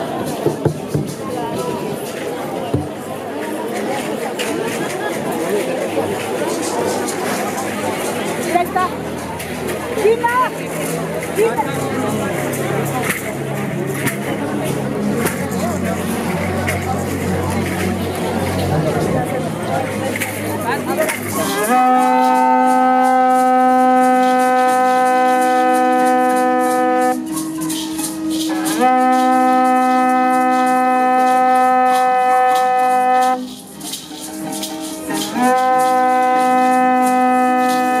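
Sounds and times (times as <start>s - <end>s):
crowd noise: 0.0s - 38.0s
rattles shaking: 0.0s - 38.0s
conch shell trumpet blasts: 21.4s - 33.5s, 34.6s - 38.0s.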